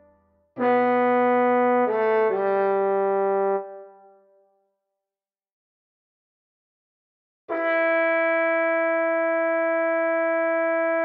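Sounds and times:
trombone melody: 0.6 - 4.0, 7.5 - 11.0.

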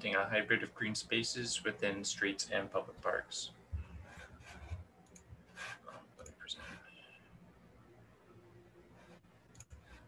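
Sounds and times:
soft rustling: 3.7 - 6.0
faint clicks: 5.0 - 5.4, 9.5 - 10.0.

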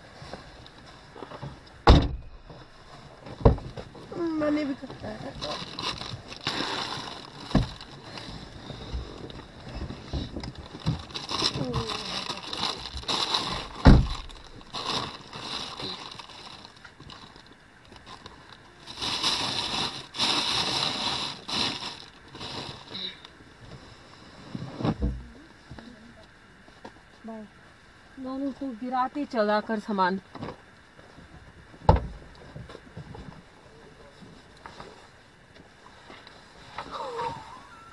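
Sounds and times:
knocks and thumps: 1.4 - 4.0, 7.5 - 7.8, 31.8 - 33.2.

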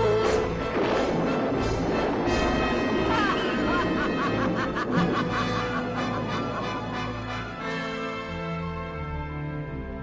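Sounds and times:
dramatic orchestral music: 0.0 - 10.0
woman cackling laugh: 3.2 - 7.0.

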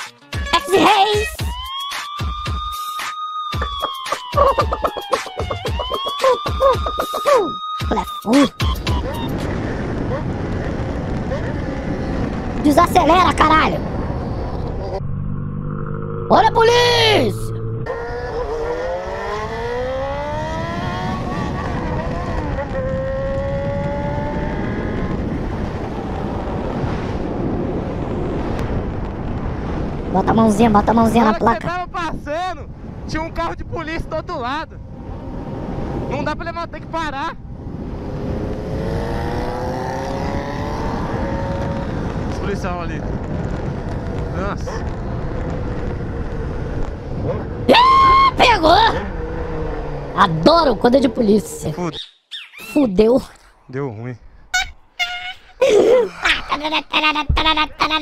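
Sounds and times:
wind and road noise: 3.4 - 58.0
motorcycle engine accelerating: 3.6 - 30.1, 34.2 - 51.9.

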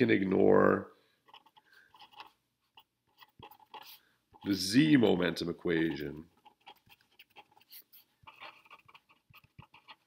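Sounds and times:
marker scratching on paper: 1.2 - 4.7, 5.8 - 10.0.

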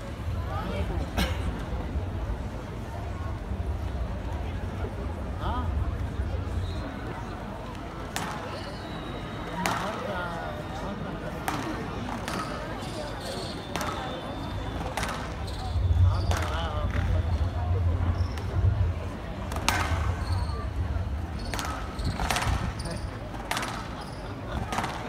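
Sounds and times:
shoes squeaking on court floor: 8.2 - 9.2, 12.2 - 17.5, 19.8 - 24.8
squash ball striking rackets and walls: 13.7 - 14.2, 14.8 - 17.1, 19.5 - 20.6, 21.3 - 25.0.

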